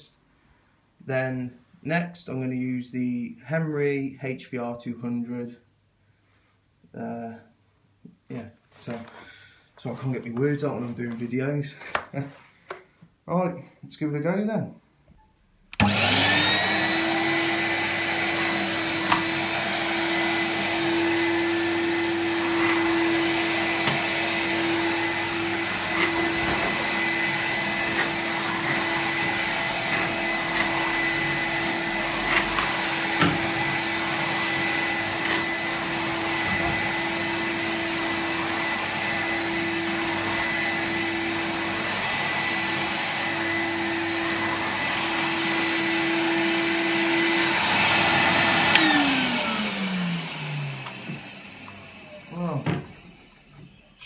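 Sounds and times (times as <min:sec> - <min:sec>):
vacuum cleaner running with whine: 0:15.7 - 0:54.0.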